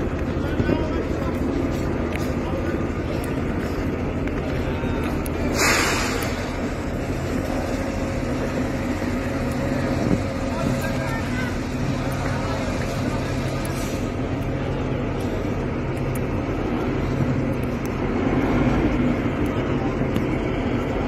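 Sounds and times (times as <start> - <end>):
engine humming: 0.0 - 21.0
faint voices: 0.0 - 21.0.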